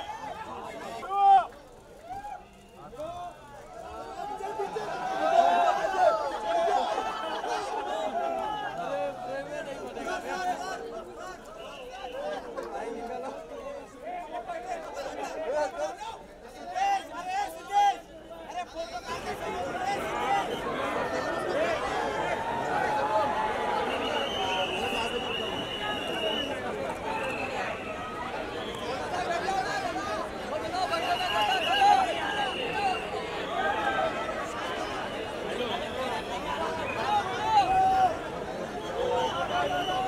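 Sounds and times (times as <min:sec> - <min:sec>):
loud shouts: 0:00.0 - 0:12.6, 0:13.8 - 0:40.0
crowd chatter: 0:00.0 - 0:40.0.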